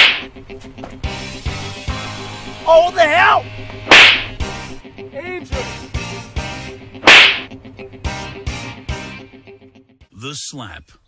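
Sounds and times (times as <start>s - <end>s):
loud sharp slap: 0.0s - 0.3s, 3.9s - 4.4s, 7.0s - 7.5s
background music with steady beat: 0.0s - 9.8s.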